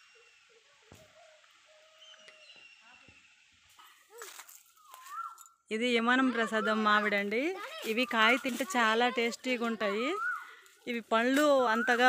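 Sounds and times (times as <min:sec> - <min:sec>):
faint distant calls: 0:00.0 - 0:12.0.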